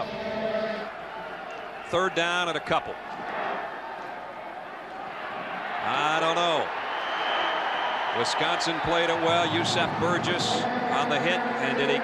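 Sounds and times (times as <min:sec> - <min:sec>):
stadium crowd din: 0:00.0 - 0:12.0.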